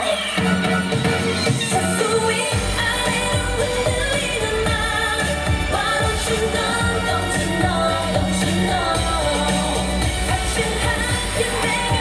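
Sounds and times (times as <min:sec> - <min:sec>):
dance track with singing: 0:00.0 - 0:12.0
bass beat: 0:02.5 - 0:12.0.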